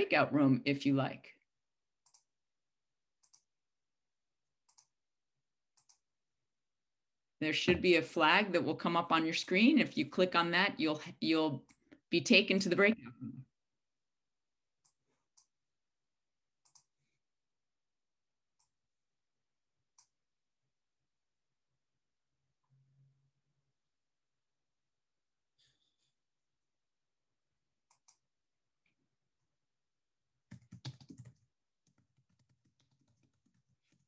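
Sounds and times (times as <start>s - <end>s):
computer keyboard typing: 2.0s - 2.3s, 4.6s - 5.0s, 5.7s - 6.0s, 30.5s - 34.0s.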